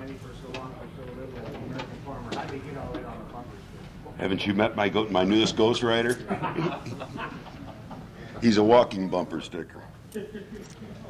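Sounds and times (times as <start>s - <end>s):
indistinct conversation: 0.0s - 11.0s.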